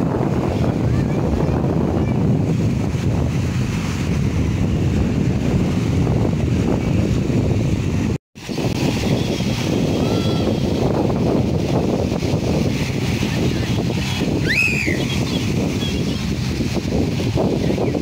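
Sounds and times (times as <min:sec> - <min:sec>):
small waves washing onto shore: 0:00.0 - 0:18.0
wind buffeting microphone: 0:00.0 - 0:18.0.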